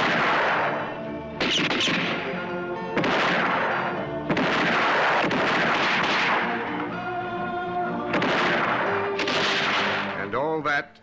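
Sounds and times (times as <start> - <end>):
gunshots with ringing tail: 0.0 - 6.8, 8.1 - 10.3
film score with held notes: 0.0 - 11.0.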